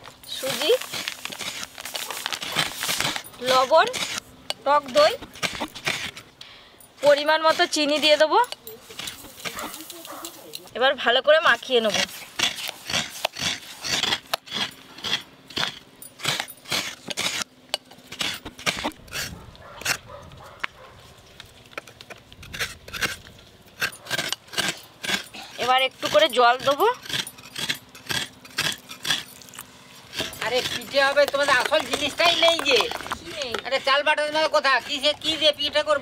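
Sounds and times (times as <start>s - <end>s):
coconut scraping on grater blade: 0.3s - 6.2s, 7.0s - 8.3s, 11.5s - 17.5s, 18.1s - 20.1s, 21.8s - 36.0s
plastic packet rustling: 0.4s - 3.2s.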